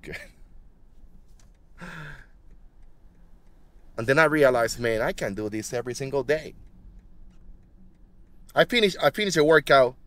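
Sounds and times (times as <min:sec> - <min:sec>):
man sighing: 0:01.8 - 0:02.4.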